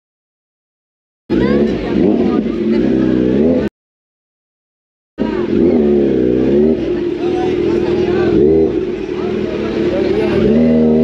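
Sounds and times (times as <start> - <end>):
motorcycle engine revving: 1.3 - 3.7, 5.2 - 11.0
people's voices: 1.3 - 3.7, 5.2 - 11.0.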